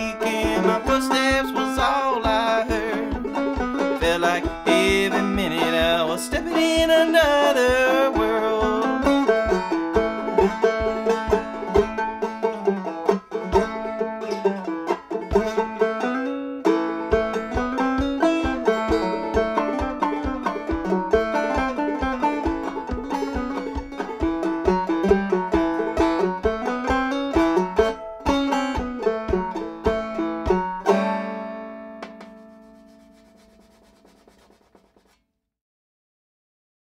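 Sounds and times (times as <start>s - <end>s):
banjo picking fast tune: 0.0s - 35.2s
low thumps: 1.7s - 14.2s, 17.1s - 27.6s, 32.0s - 35.1s.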